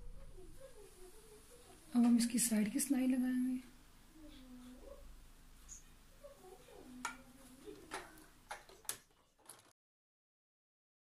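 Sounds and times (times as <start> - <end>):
faint clicks and taps: 5.6 - 9.7.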